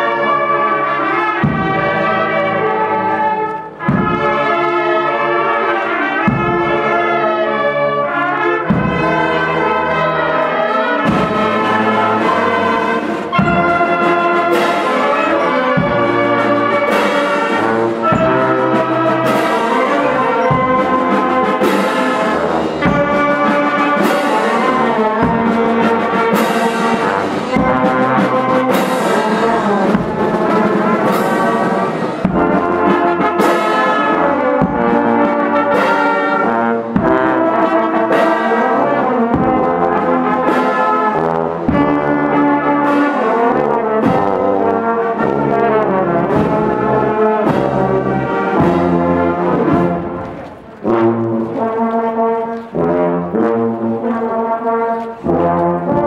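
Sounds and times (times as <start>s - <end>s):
marching wind band playing: 0.0s - 56.0s
drum strokes: 3.7s - 4.4s, 8.6s - 10.1s, 11.0s - 43.2s.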